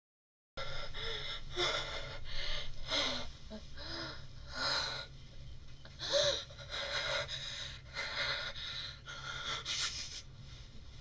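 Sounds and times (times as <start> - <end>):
faint steady low hum: 0.6 - 11.0.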